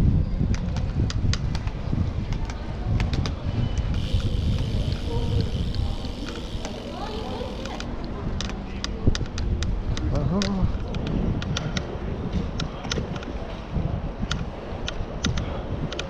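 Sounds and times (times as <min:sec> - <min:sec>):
bicycle tyres on paving: 0:00.0 - 0:16.0
wind on microphone: 0:00.0 - 0:16.0
bike clicks and rattles: 0:00.4 - 0:16.0.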